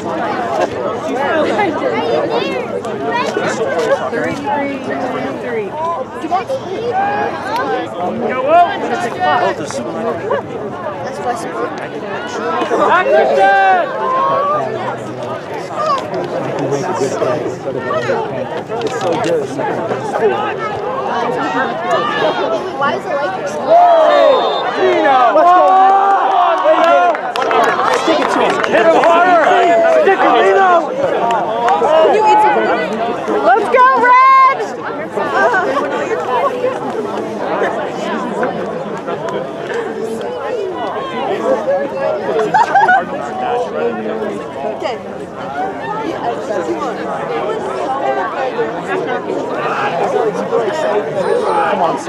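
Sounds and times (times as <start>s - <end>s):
spectators chattering: 0.0s - 52.0s.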